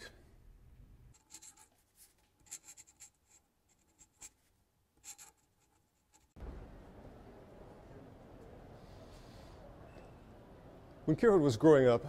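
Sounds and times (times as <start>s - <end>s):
pen scratching on paper: 1.1s - 1.8s, 2.4s - 4.4s, 5.0s - 6.4s.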